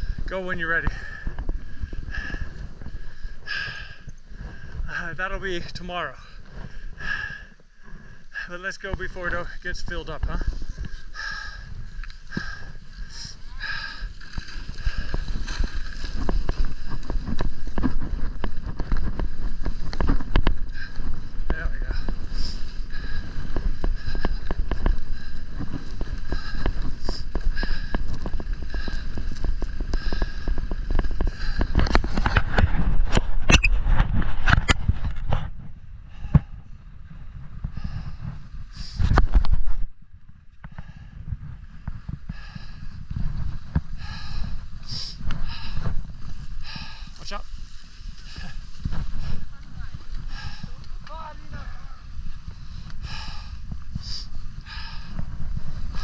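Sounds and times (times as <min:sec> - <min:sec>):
wind rumbling on microphone: 0:00.0 - 0:56.0
skis scraping on packed snow: 0:12.1 - 0:20.4.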